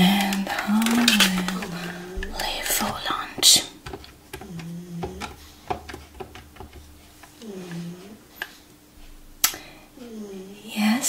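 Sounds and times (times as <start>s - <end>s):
woman whispering: 0.0s - 3.8s, 10.0s - 11.0s
woman humming: 0.0s - 5.4s, 7.4s - 8.3s, 10.0s - 10.9s.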